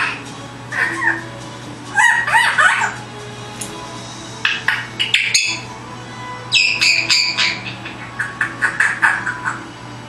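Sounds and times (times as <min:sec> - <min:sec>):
parrot whistling: 0:00.0 - 0:01.3, 0:01.9 - 0:03.0, 0:04.6 - 0:05.7, 0:06.5 - 0:09.7.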